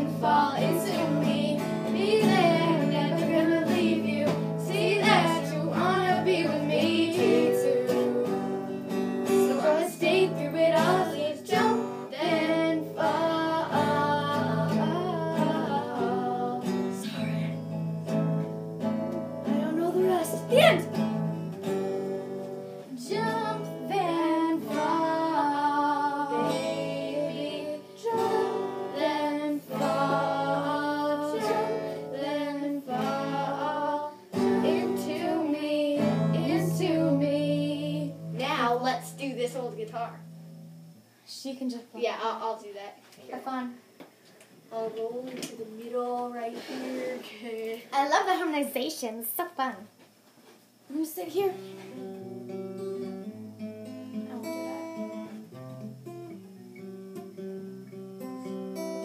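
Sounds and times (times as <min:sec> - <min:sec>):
girls singing: 0:00.0 - 0:17.5, 0:22.9 - 0:38.3
acoustic guitar strumming: 0:00.0 - 0:41.1, 0:51.3 - 0:59.0.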